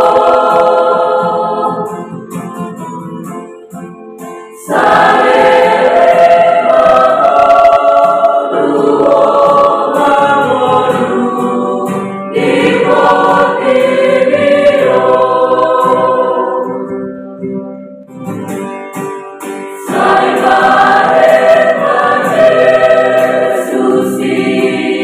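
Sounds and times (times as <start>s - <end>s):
youth choir singing: 0.0s - 2.3s, 4.6s - 17.0s, 19.8s - 25.0s.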